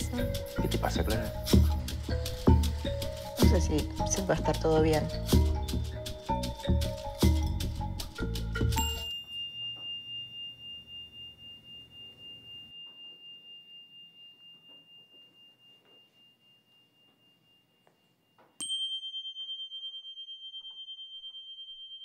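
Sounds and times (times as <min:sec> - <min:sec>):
metallic chime ringing: 0:00.0 - 0:22.0.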